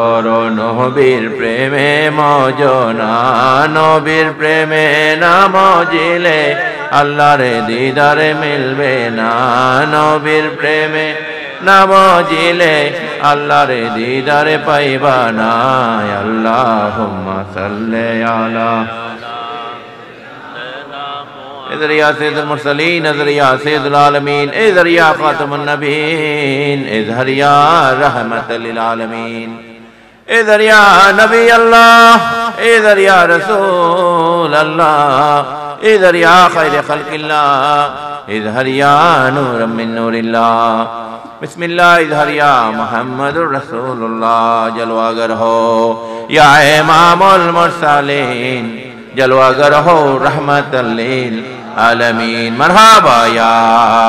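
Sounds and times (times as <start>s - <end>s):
men chanting softly: 0.0s - 23.8s
man chanting devotional song: 0.0s - 54.0s
man's loud voice: 0.0s - 54.0s.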